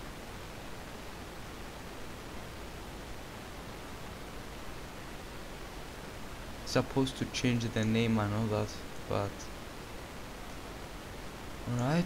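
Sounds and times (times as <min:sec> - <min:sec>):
microphone hiss: 0:00.0 - 0:12.0.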